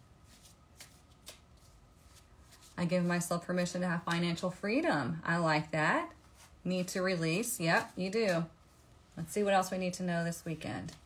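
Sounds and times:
cards being shuffled: 0.2s - 3.2s, 7.6s - 8.8s
soft clicks of cards: 0.4s - 1.7s.

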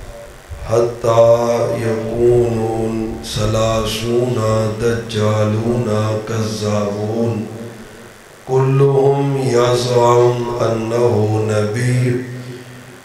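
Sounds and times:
man chanting through a microphone: 0.0s - 13.0s.

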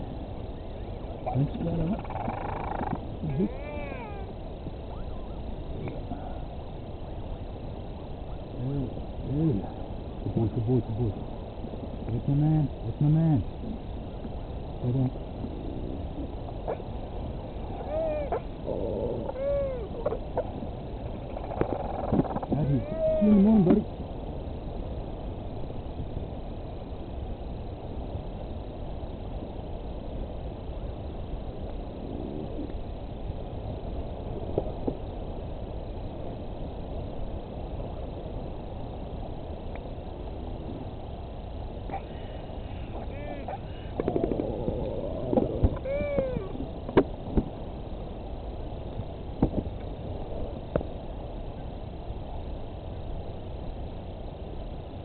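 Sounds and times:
albatross calls: 1.2s - 4.3s, 17.6s - 20.6s, 21.2s - 23.8s, 41.9s - 44.4s, 45.6s - 46.6s
wind noise on microphone: 42.9s - 47.8s.

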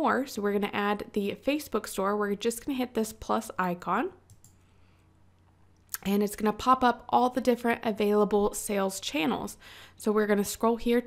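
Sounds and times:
computer mouse click: 4.3s - 4.6s.

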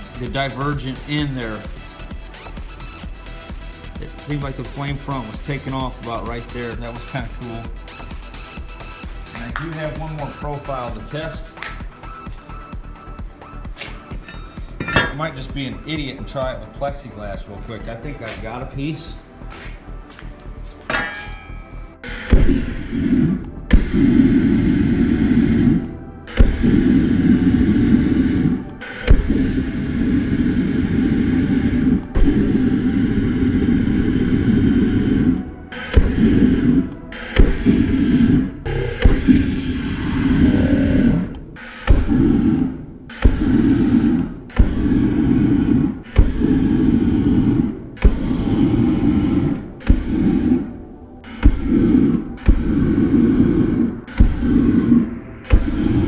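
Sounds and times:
burner flame roaring: 22.3s - 56.0s
sharp pop: 39.0s - 39.6s.

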